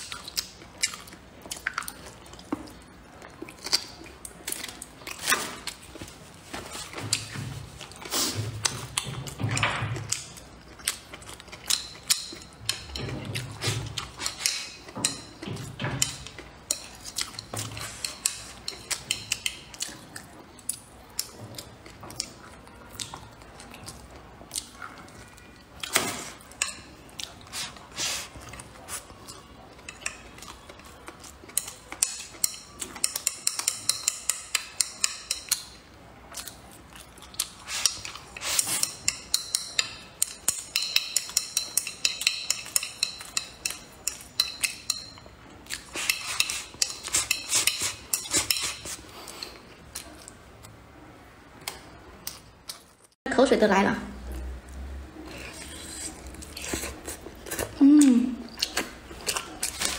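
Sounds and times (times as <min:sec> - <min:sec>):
chopsticks tapping ceramic bowl: 0:38.8 - 0:45.3.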